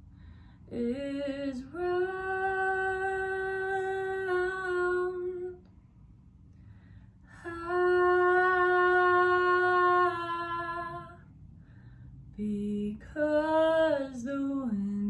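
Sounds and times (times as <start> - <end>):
woman singing long notes: 7.4 - 11.2.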